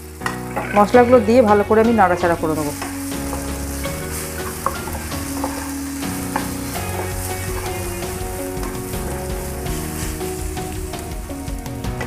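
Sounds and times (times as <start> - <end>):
food sizzling in hot oil: 0.0 - 12.0
wooden spatula scraping pan: 0.2 - 10.7.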